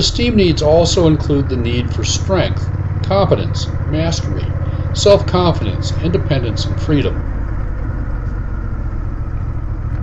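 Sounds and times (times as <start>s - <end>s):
motorcycle engine cruising: 0.0s - 10.0s
road noise: 0.0s - 10.0s.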